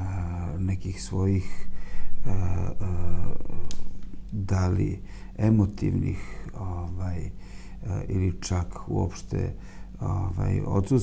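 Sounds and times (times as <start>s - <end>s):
man speaking slowly: 0.0s - 11.0s.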